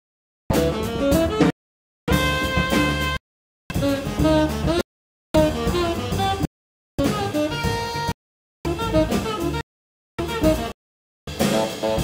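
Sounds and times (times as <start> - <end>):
jazz quartet playing: 0.5 - 4.8, 5.4 - 9.6, 10.2 - 10.8, 11.4 - 12.0.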